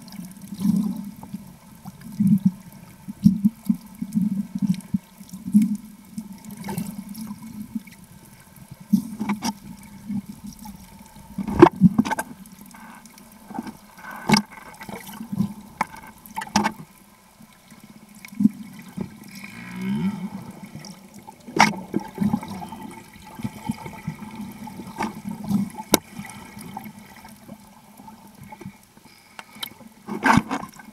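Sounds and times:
underwater gurgling and swishing: 0.0 - 30.9.

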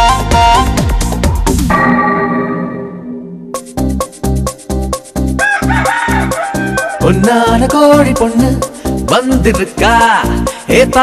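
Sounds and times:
rooster crow: 5.4 - 7.3.

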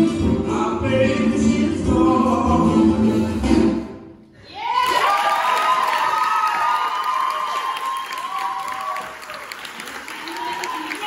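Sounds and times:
audience cheering and whooping: 4.4 - 11.0
audience clapping: 4.8 - 11.0.

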